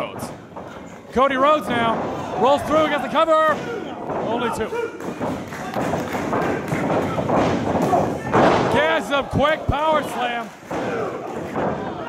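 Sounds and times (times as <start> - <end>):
crowd chatter and shouts: 1.7 - 12.0.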